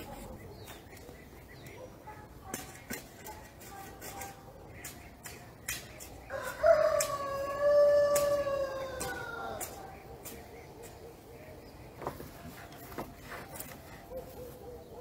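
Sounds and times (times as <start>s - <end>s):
rooster crowing: 6.3s - 9.6s.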